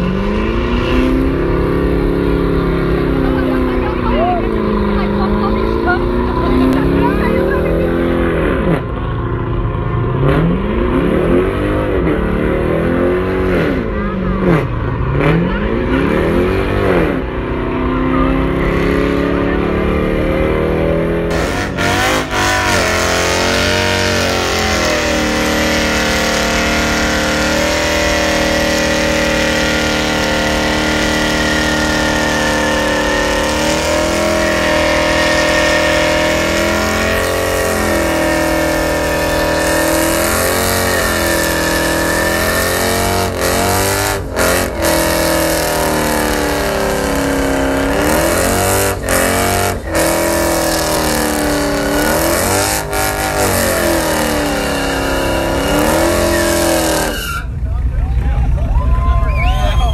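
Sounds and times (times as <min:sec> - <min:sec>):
truck engine revving: 0:00.0 - 0:59.9.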